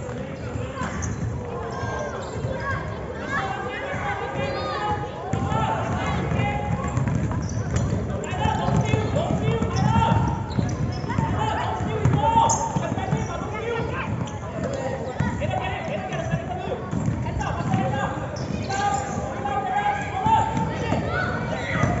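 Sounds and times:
basketball bouncing on wooden floor: 6.2s - 18.5s.

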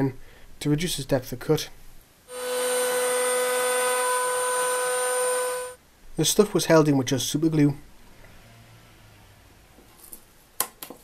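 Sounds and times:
router whining while cutting wood: 2.3s - 5.8s.

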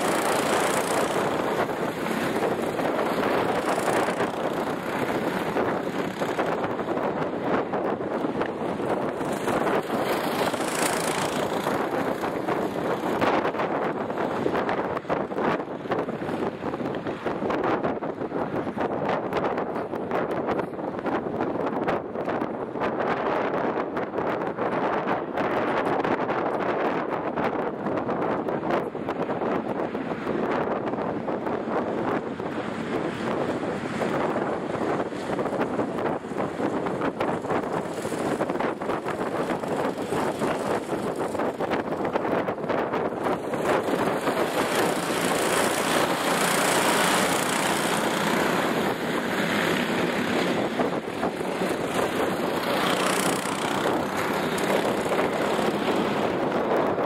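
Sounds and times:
wind blowing on microphone: 0.0s - 57.0s.

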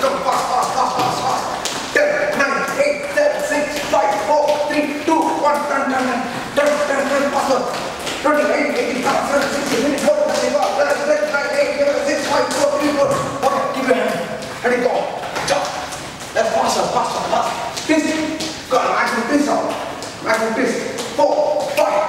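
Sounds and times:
man's raised voice: 0.0s - 22.0s
sneakers on wooden floor: 0.8s - 22.0s.

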